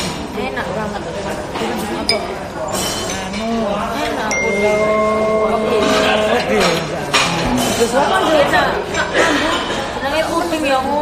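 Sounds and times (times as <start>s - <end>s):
background chatter: 0.0s - 11.0s
tableware clinking: 1.5s - 9.8s.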